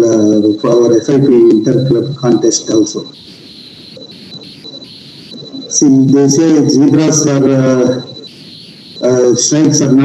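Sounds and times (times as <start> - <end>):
high-pitched tone: 0.0 - 10.0
microphone hiss: 0.0 - 10.0.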